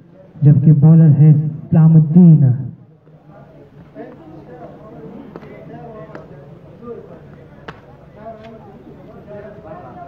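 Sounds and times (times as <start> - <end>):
faint voices talking: 0.0 - 10.0.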